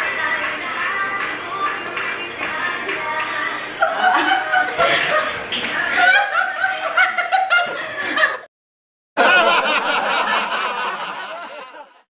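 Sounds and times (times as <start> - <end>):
women laughing: 3.8 - 8.5, 9.2 - 12.0.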